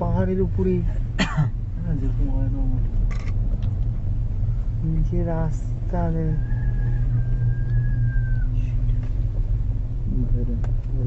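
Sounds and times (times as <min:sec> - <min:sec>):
cable car rumble: 0:00.0 - 0:11.0
voices: 0:04.8 - 0:09.2.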